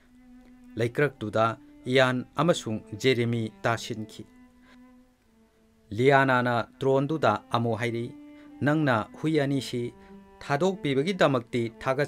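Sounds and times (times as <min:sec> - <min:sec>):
man narrating: 0:00.8 - 0:04.3, 0:05.9 - 0:12.0.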